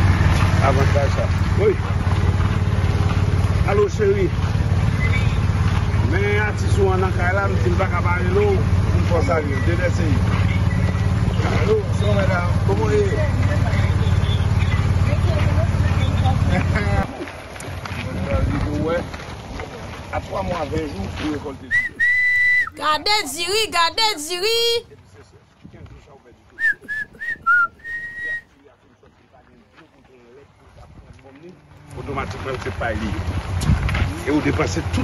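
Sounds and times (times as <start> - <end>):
vehicle engine running: 0.0 - 22.2, 30.5 - 35.0
people's voices: 11.2 - 25.2
person whistling a tune: 21.7 - 22.8, 26.6 - 28.4.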